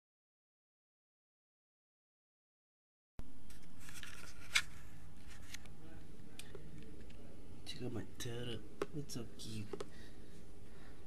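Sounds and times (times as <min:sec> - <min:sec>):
steady low hum: 0:03.2 - 0:11.0.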